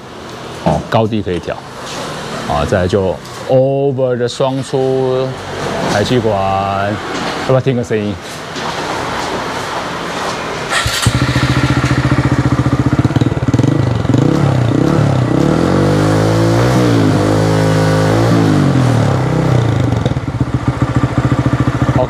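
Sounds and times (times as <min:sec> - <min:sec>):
motorcycle engine starting and idling: 0:10.6 - 0:22.0
motorcycle engine revving: 0:10.7 - 0:22.0.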